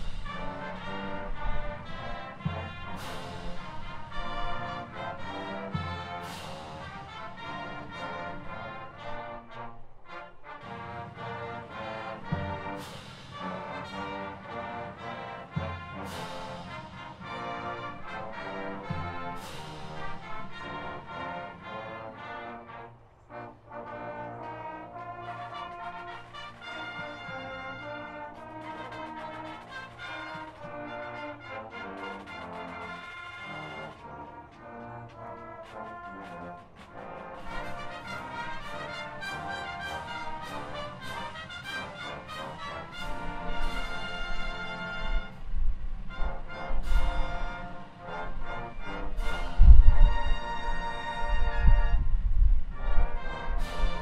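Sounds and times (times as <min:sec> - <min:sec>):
wind rumbling on microphone: 0:00.0 - 0:05.6, 0:42.8 - 0:54.0
brass band playing anthem: 0:00.0 - 0:54.0.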